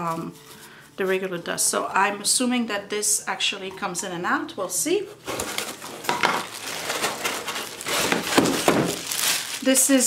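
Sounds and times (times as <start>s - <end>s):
plastic packaging crinkling: 5.2s - 10.0s
cardboard packing clicks and knocks: 5.3s - 9.6s.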